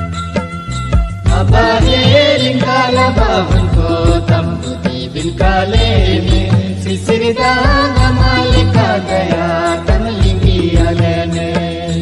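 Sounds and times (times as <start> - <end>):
low drum beat: 1.0 - 11.8.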